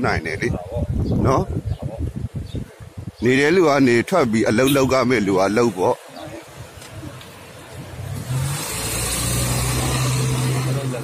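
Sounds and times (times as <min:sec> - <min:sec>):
van engine hum: 0:06.0 - 0:11.0.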